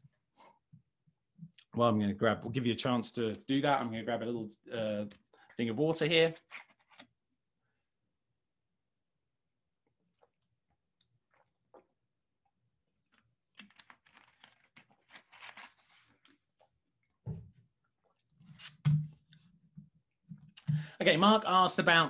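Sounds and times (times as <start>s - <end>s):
rustling: 13.6s - 16.4s.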